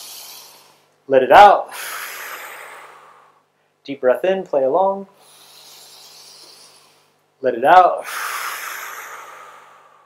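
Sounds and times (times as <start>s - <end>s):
deep breath drawn in: 1.7s - 3.7s, 5.2s - 7.2s, 8.0s - 10.0s.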